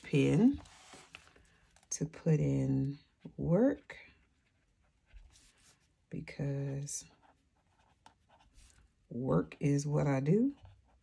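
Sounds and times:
brush pen scratching on paper: 6.6 - 9.0, 10.2 - 11.0.

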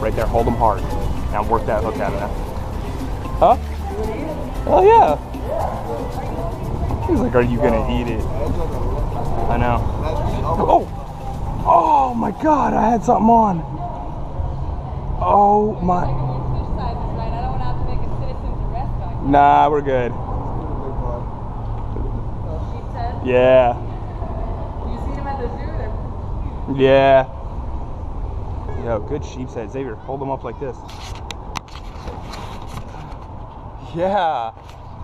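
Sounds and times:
faint voices: 0.0 - 19.2
camera handling clicks and scrapes: 30.9 - 33.4.

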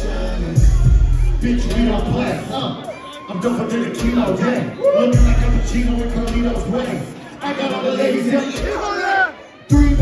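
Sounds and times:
loud bass-heavy hip-hop beat: 0.0 - 7.2, 9.7 - 10.0
crowd shouting: 0.4 - 10.0.

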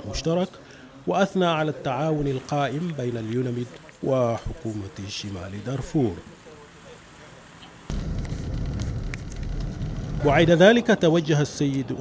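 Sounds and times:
vehicle driving rumble: 7.9 - 10.7.

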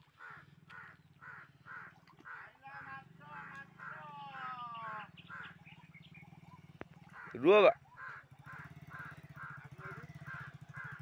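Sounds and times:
crows calling: 0.0 - 11.0.

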